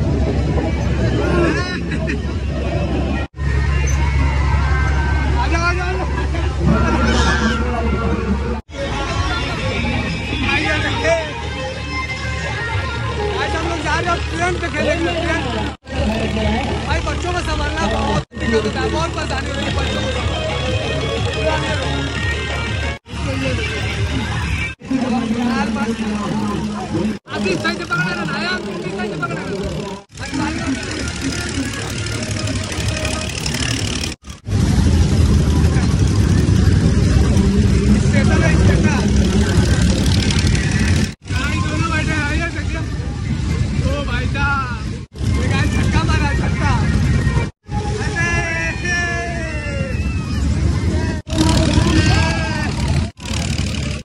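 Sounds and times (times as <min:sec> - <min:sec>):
crowd voices: 0:00.0 - 0:54.0
fairground music: 0:07.7 - 0:15.6, 0:18.3 - 0:27.2
heavy low rumble: 0:13.9 - 0:48.6.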